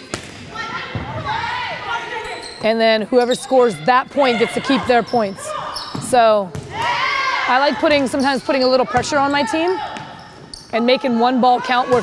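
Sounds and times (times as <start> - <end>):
players' voices calling: 0.6 - 12.0.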